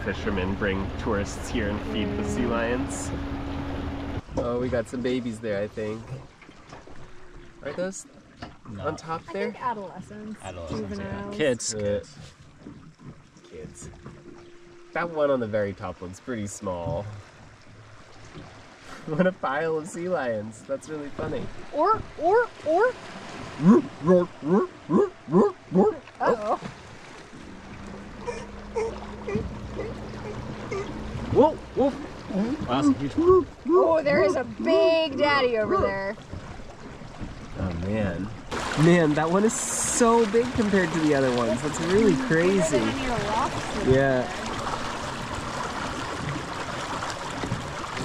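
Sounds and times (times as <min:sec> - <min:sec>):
water rushing past hull: 0:00.0 - 0:48.0
sea lions barking: 0:21.8 - 0:26.7, 0:27.9 - 0:36.2, 0:41.3 - 0:45.5.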